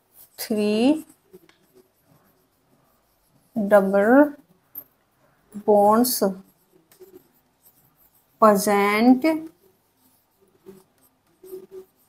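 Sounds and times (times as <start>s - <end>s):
marker pen scratching on whiteboard: 0.0s - 12.0s.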